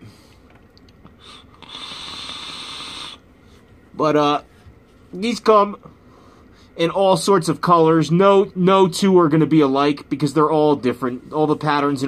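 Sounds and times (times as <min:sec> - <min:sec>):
airy hiss of vape draw: 0:01.2 - 0:03.2.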